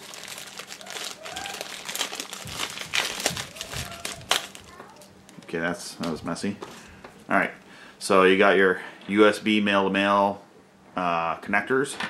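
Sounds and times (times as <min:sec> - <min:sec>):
plastic bag crinkling: 0:00.0 - 0:06.2.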